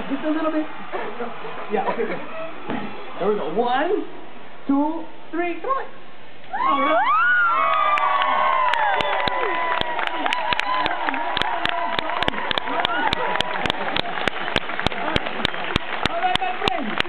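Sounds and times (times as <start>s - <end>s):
crowd applause: 0.0s - 3.2s, 7.1s - 17.0s
crowd cheering and shrieking: 0.0s - 3.4s, 6.5s - 17.0s
close hand claps: 7.7s - 17.0s.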